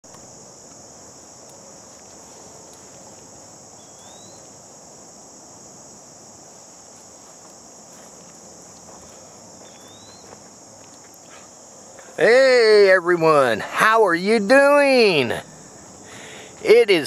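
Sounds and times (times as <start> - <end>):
insect chorus: 0.0 - 17.0.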